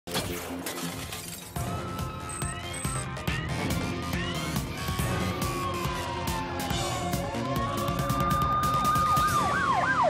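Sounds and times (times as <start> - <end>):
glass shattering crash: 0.1 - 1.6
news theme music: 1.6 - 10.0
rising siren-like tone: 4.3 - 10.0.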